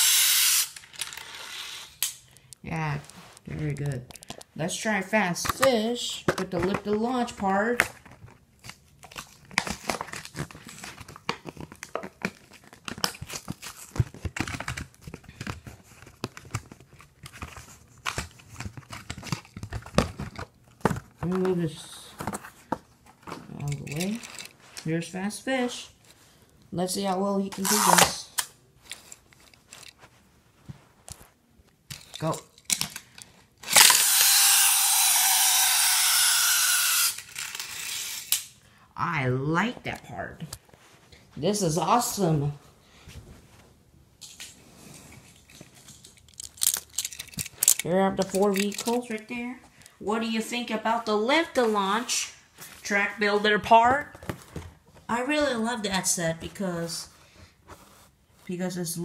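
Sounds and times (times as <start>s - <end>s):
toy car rushing along plastic track: 0.0s - 2.0s, 33.6s - 38.4s
plastic blister pack crinkling: 7.8s - 24.9s, 45.3s - 50.0s.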